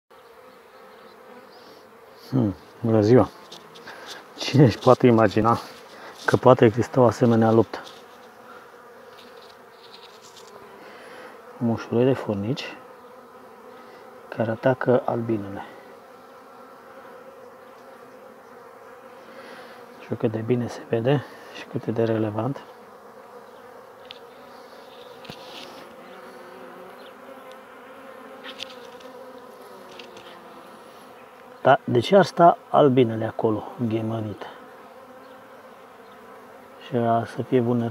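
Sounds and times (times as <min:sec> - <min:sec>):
bees buzzing: 0:00.1 - 0:37.9.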